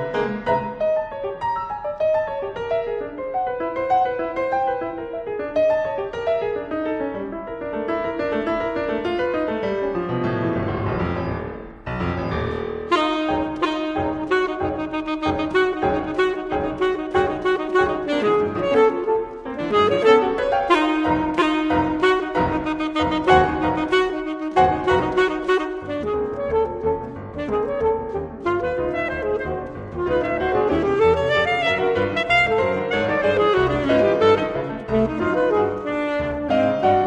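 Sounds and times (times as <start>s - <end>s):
piano broken-chord passage: 0.0s - 2.3s, 9.3s - 37.0s
alto saxophone: 12.9s - 37.0s.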